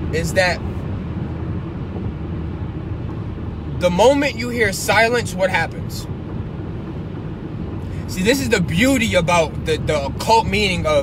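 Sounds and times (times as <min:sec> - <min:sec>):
car engine: 0:00.0 - 0:11.0
road noise: 0:00.0 - 0:11.0.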